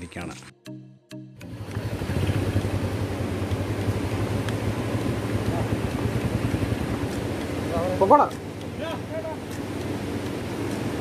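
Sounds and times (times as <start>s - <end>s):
motorcycle engine running: 1.4s - 11.0s.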